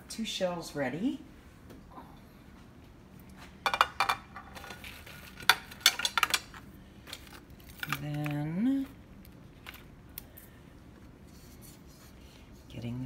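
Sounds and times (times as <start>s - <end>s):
utensils clinking: 3.7s - 8.4s.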